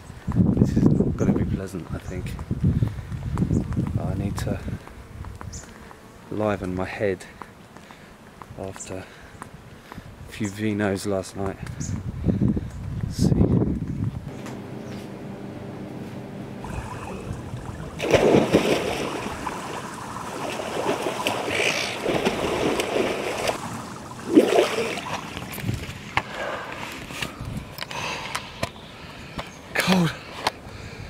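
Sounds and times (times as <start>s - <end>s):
loud splash in pool: 16.6s - 25.5s
swimming strokes splashing: 16.6s - 26.2s.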